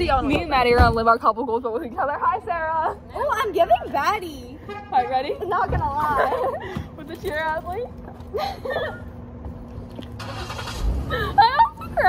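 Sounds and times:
car engine running: 9.0s - 12.0s.

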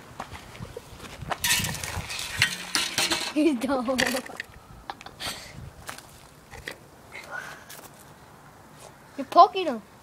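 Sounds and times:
gravelly dirt scraping: 0.2s - 4.5s.

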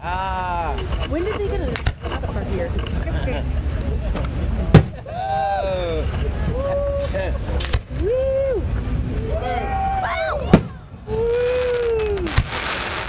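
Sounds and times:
firework bang: 4.7s - 5.1s, 10.5s - 13.0s.

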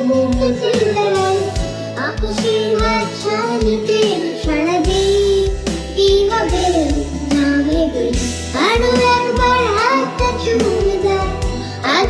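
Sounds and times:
band backing with drums and bass: 0.0s - 12.0s
girl singing: 0.0s - 12.0s.

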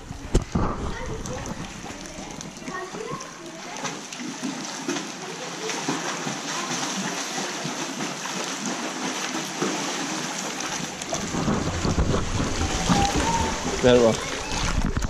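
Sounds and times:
pool water splashing: 0.0s - 15.0s.

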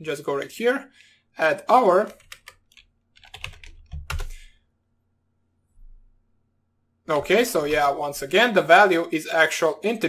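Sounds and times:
computer keyboard typing: 2.0s - 4.5s.

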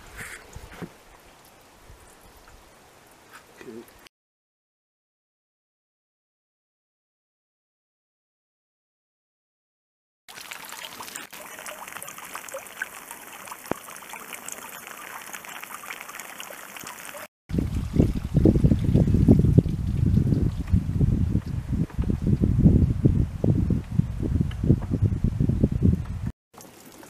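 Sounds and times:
water trickling through a net: 10.3s - 21.0s, 26.6s - 27.0s
wind rumble on microphone: 17.5s - 26.3s.

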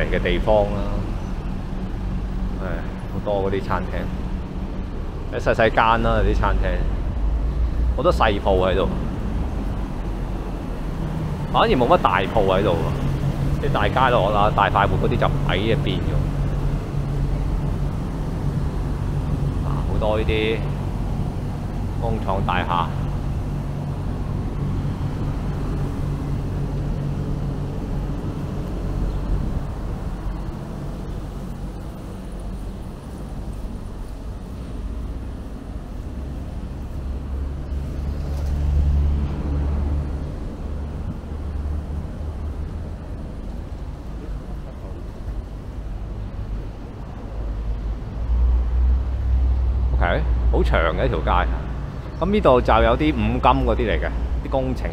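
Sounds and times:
road traffic rumble: 0.0s - 54.9s.

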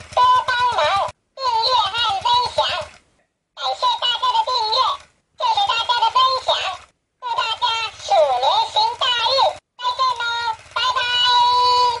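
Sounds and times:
high-pitched toy singing voice: 0.2s - 3.0s, 3.6s - 12.0s.

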